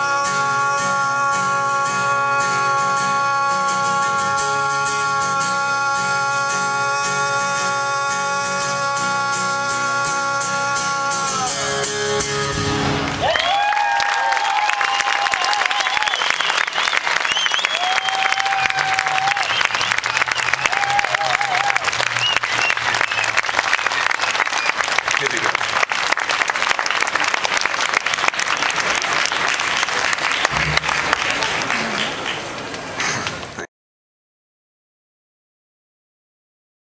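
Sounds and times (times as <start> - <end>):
audience shouting and cheering: 12.5 - 25.5, 28.5 - 33.5
audience clapping: 13.0 - 33.7.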